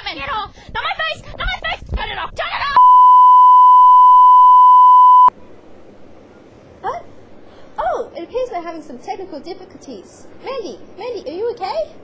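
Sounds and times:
test-tone beep: 2.8s - 5.3s.

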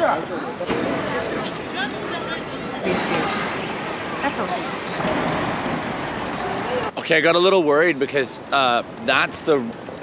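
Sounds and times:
city traffic noise: 0.0s - 10.0s.

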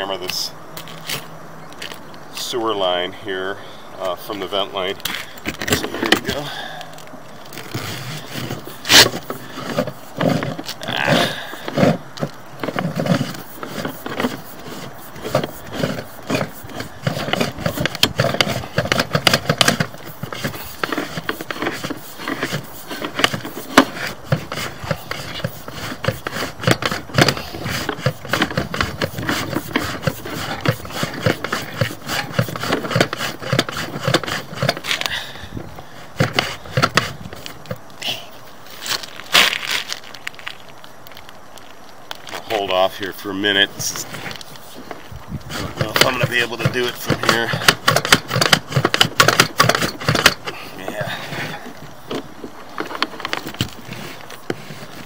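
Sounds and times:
cable clicking and scraping in pipe: 11.6s - 35.2s, 43.8s - 50.6s.

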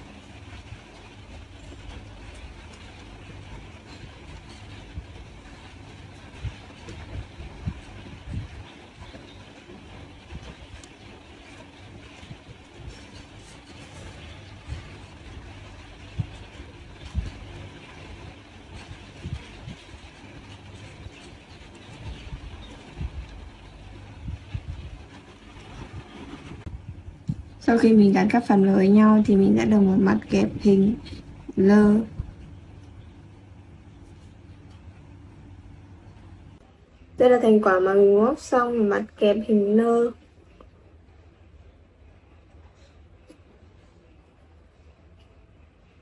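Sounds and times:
low handling rumble: 0.0s - 42.5s.

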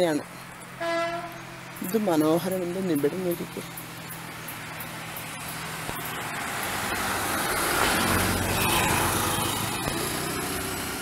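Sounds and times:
vehicle passing on road: 0.0s - 11.0s.

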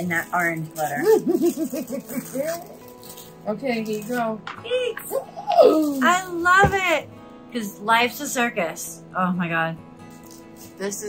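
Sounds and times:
woman laughing: 1.0s - 2.8s.

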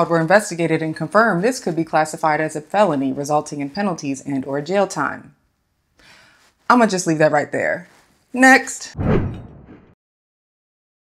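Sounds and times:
whoosh with heavy low end: 9.0s - 10.0s.

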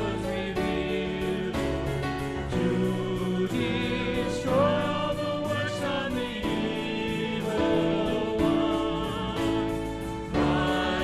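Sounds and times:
vocal group singing in harmony: 0.0s - 11.0s.

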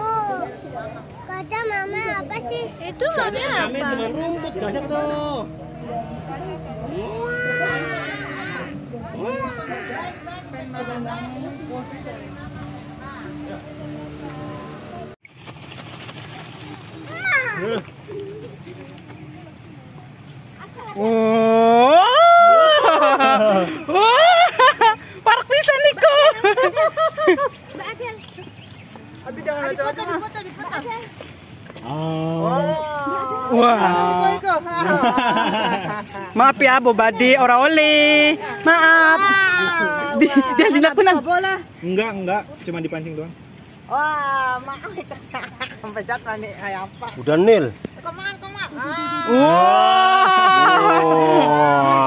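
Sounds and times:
people's voices: 0.0s - 15.2s, 16.6s - 42.7s, 43.3s - 52.0s
long drawn-out call: 5.4s - 11.4s.

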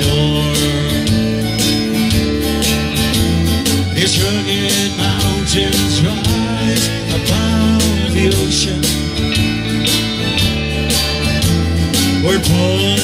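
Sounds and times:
electric guitar bass line: 0.0s - 13.0s
strummed acoustic guitar: 0.0s - 13.0s.

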